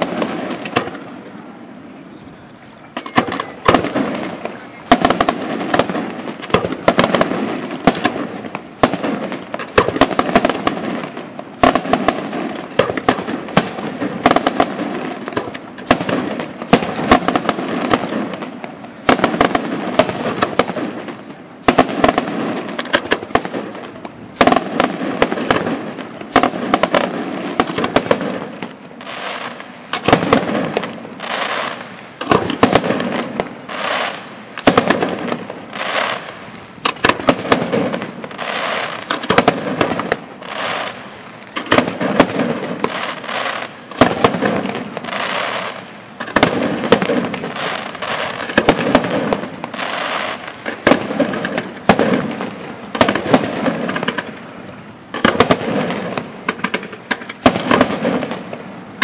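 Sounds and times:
firework shells bursting: 0:02.8 - 0:59.0.

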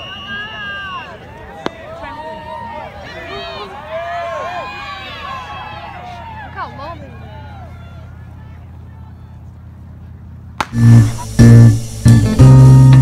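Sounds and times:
outdoor crowd noise: 0:00.0 - 0:13.0
sharp crack: 0:10.6 - 0:13.0
music with guitar and drums: 0:10.7 - 0:13.0.

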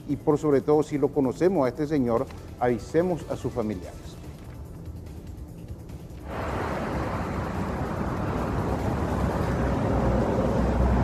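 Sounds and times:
street traffic rushing: 0:06.2 - 0:11.0.

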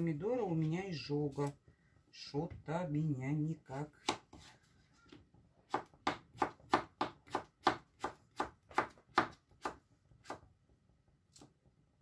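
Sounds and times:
knife chopping on cutting board: 0:04.0 - 0:04.5, 0:05.7 - 0:10.4.

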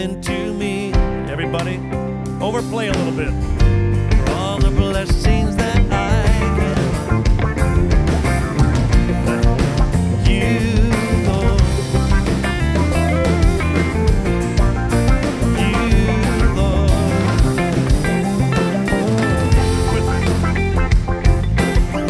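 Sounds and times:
worship band playing: 0:00.0 - 0:22.0.

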